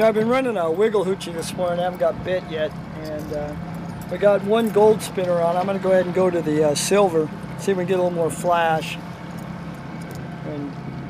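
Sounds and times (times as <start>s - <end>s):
outboard motor humming: 0.0s - 11.0s
wind and water noise: 0.0s - 11.0s.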